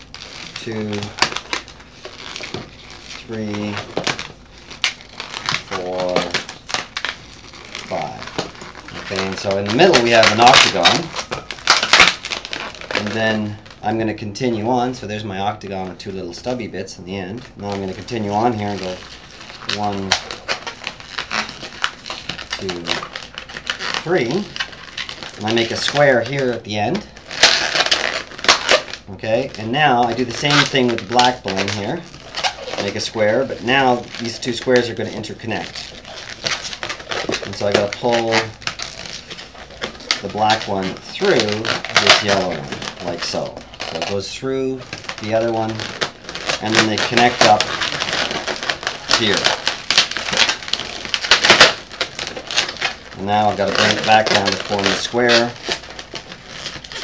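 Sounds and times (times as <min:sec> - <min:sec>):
balloons squeaking as twisted: 0:00.0 - 0:57.0.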